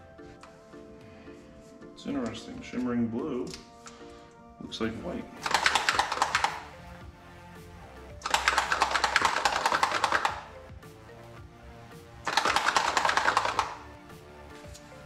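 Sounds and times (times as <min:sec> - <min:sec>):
background music: 0:00.0 - 0:15.0
paint bottle rattling when shaken: 0:05.4 - 0:06.7, 0:08.2 - 0:10.6, 0:12.2 - 0:13.9.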